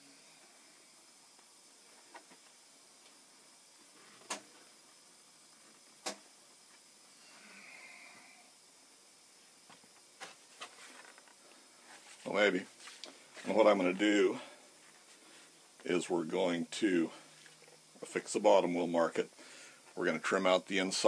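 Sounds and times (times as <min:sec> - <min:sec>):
soft rub of gloved hands: 0:10.4 - 0:13.7.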